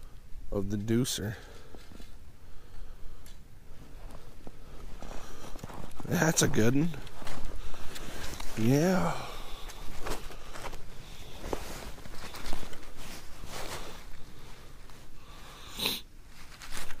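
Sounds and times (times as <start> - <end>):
gloved hands rustling: 1.5 - 15.4, 16.2 - 17.0.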